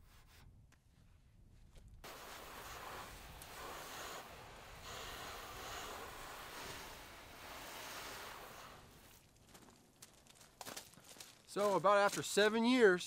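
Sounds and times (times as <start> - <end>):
hose spraying water on metal: 2.0 - 9.2.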